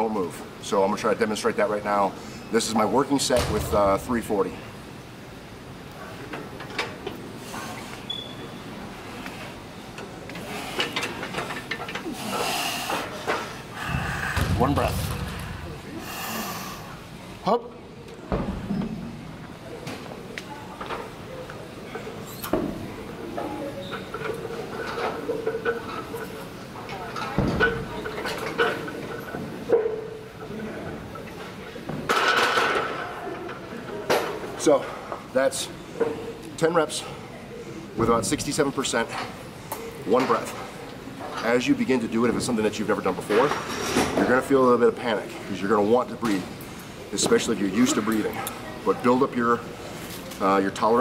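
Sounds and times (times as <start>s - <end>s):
hissing breath: 12.0s - 14.5s, 15.3s - 17.0s.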